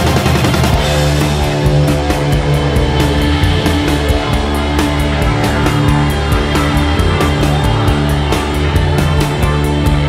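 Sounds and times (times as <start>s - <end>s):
distorted guitars: 0.0s - 10.0s
drums: 0.0s - 10.0s.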